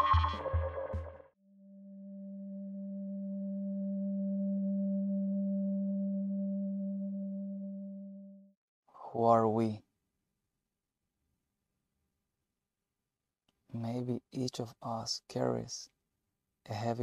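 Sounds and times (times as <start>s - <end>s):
low electronic tone: 1.7s - 8.5s.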